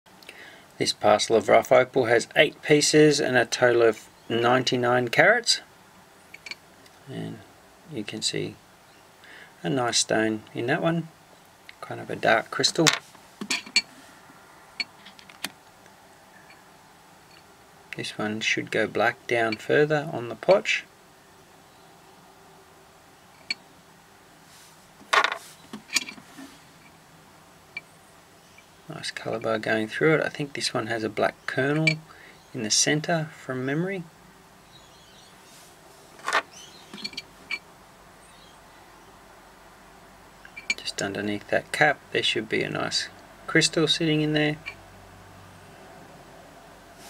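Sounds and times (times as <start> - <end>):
faint steady hiss: 0.1 - 47.0.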